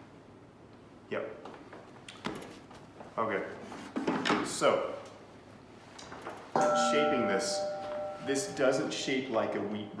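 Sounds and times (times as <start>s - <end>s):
chime-like tone: 6.6s - 10.0s
man speaking: 6.6s - 10.0s.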